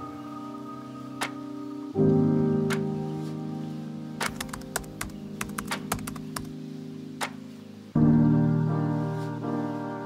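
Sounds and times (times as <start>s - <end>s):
piano music: 0.0s - 10.0s
keyboard typing clicks: 4.2s - 6.5s.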